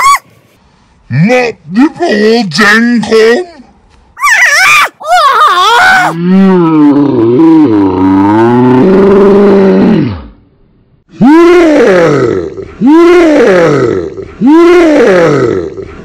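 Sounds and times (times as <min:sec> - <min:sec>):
man screaming: 0:04.2 - 0:06.2, 0:11.2 - 0:15.7.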